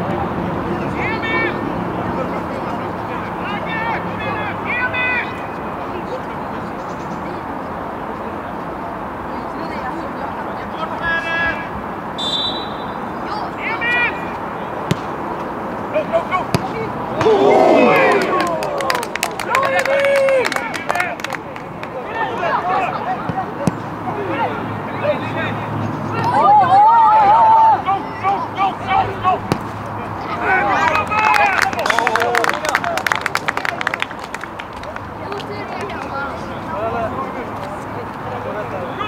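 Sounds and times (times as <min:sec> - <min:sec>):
football players shouting: 0:02.8 - 0:05.5, 0:15.9 - 0:33.0.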